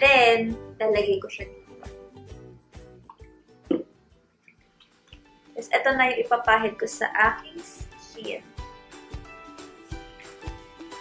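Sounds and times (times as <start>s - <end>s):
quiet background music: 0.0s - 11.0s
liquid drip: 3.0s - 5.4s.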